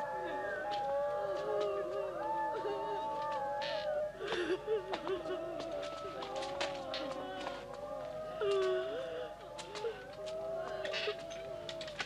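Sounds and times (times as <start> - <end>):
mourners wailing: 0.0 - 12.0.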